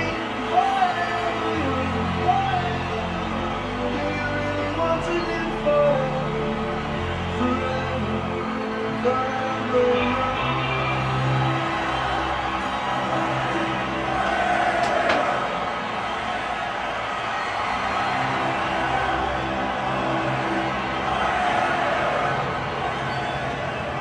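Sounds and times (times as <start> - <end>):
backing music with held notes: 0.0 - 24.0.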